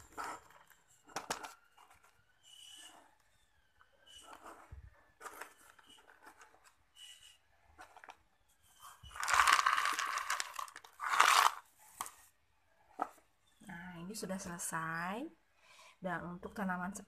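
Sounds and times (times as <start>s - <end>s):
pebbles crackling and clicking: 9.0s - 12.1s.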